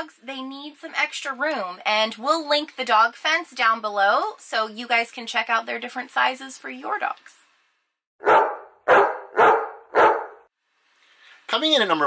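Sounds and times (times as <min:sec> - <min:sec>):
dog barking: 0:08.2 - 0:10.5.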